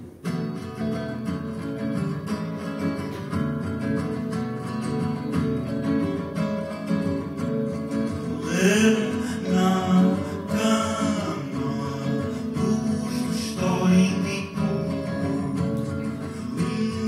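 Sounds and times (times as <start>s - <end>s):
acoustic guitar strumming: 0.0s - 17.0s
person singing: 8.2s - 17.0s.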